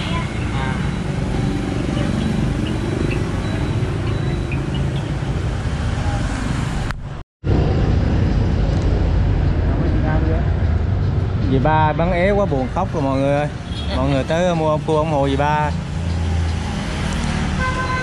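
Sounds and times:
motorbike and road traffic rumble: 0:00.0 - 0:18.0.

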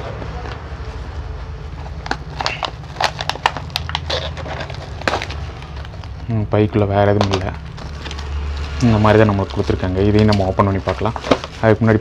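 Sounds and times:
plastic packaging crackling: 0:00.2 - 0:12.0.

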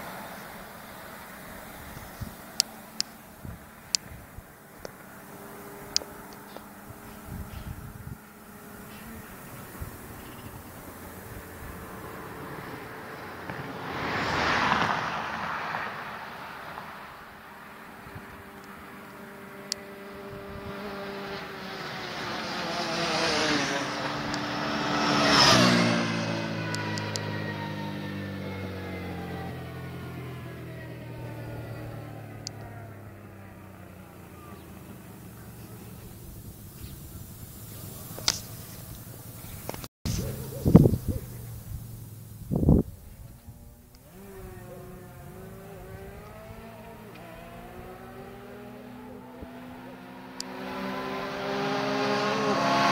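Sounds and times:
high-revving engine passing: 0:00.0 - 0:52.9
vehicles passing at full throttle: 0:00.0 - 0:52.9.

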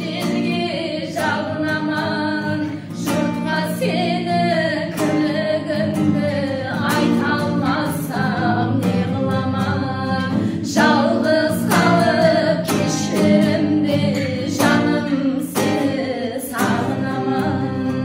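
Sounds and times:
strummed acoustic guitar: 0:00.0 - 0:18.0
women singing together: 0:00.0 - 0:18.0.

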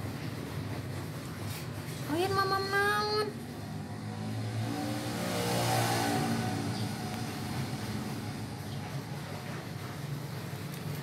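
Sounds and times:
vehicle engine passing by: 0:03.5 - 0:10.4.

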